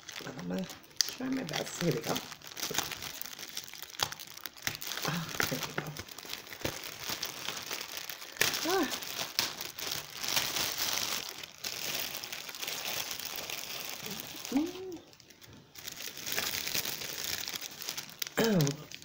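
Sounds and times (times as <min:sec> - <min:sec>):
plastic bag crinkling: 0:00.0 - 0:19.0.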